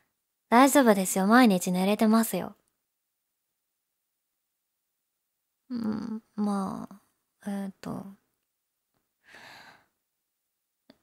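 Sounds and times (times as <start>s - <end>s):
woman sighing: 5.7s - 6.2s.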